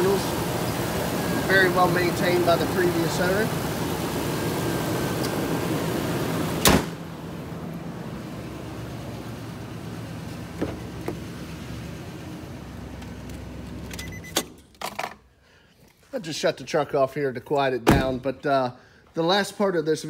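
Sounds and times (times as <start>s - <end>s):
engine idling: 0.0s - 13.7s
hood slamming: 6.5s - 7.0s, 17.8s - 18.3s.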